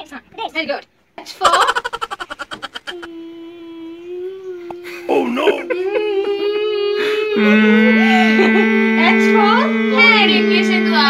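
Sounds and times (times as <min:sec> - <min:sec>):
child humming: 0:02.6 - 0:11.0.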